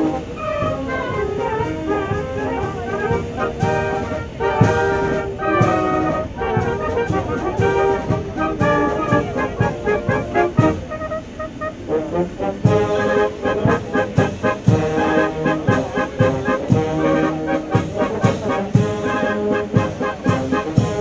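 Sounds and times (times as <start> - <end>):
brass band playing a march: 0.0 - 21.0.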